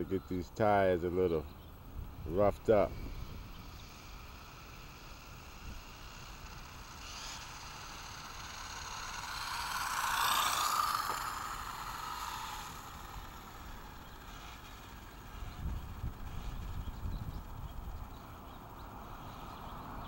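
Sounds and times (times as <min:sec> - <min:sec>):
remote control car motor: 0:02.1 - 0:20.0.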